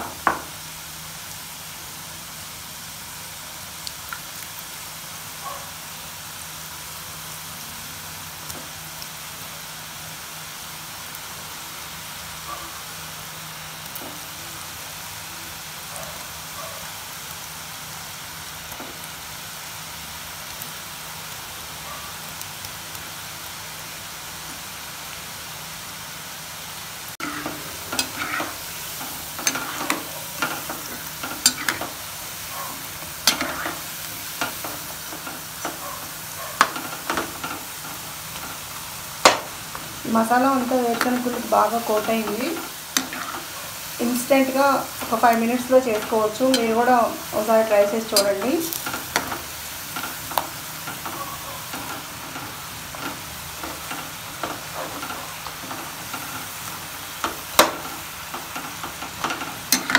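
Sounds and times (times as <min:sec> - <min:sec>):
food sizzling in hot oil: 0:00.0 - 0:59.9
metal spoon scraping a pan: 0:27.2 - 0:32.0, 0:32.7 - 0:38.6, 0:39.2 - 0:56.5, 0:57.6 - 0:59.9.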